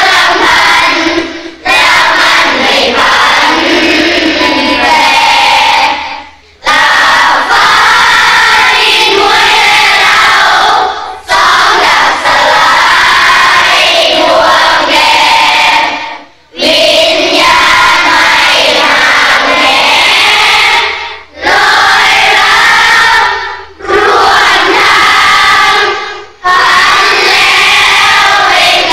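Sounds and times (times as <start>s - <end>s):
children singing in unison: 0.0s - 28.9s.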